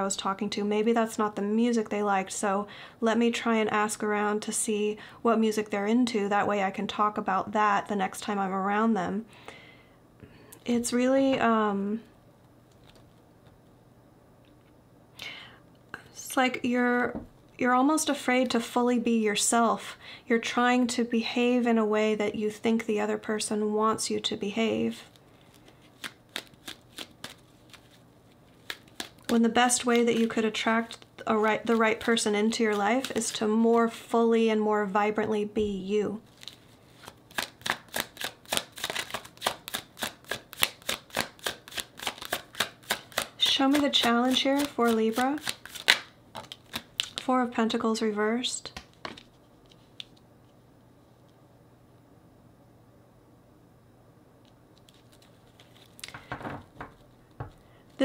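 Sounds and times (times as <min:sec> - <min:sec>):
cards being shuffled: 0:25.1 - 0:33.9, 0:36.3 - 0:47.3, 0:48.7 - 0:50.2, 0:54.8 - 0:58.0.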